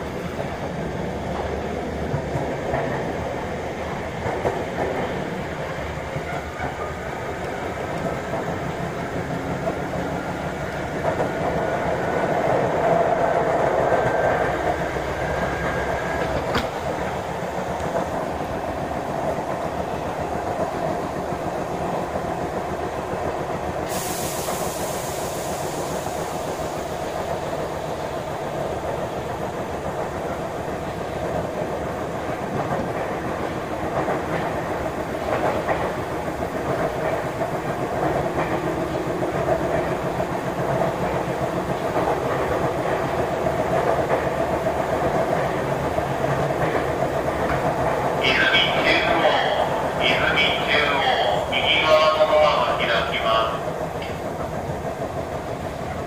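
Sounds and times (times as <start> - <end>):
train rolling noise: 0.0 - 56.0
hiss: 23.7 - 28.0.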